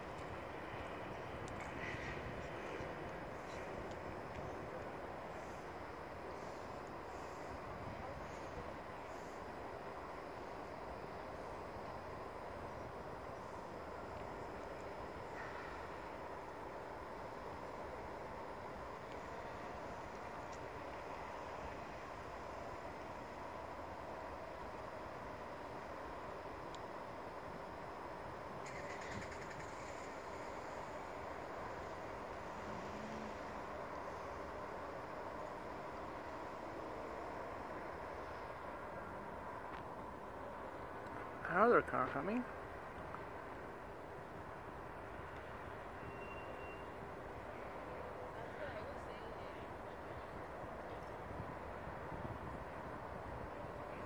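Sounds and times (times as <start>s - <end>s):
distant traffic hum: 0.0s - 54.0s.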